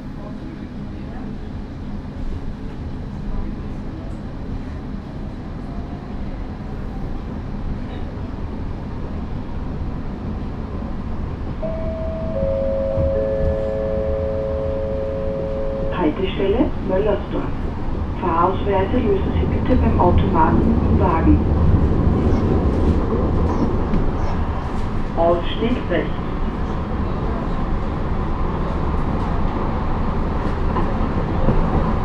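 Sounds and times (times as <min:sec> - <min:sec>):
train wheels rumbling on rails: 0:00.0 - 0:32.0
three-note descending chime: 0:11.6 - 0:16.0.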